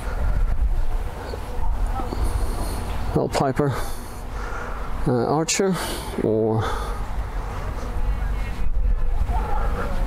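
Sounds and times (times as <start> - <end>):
wind buffeting microphone: 0.0 - 3.1, 7.0 - 10.0.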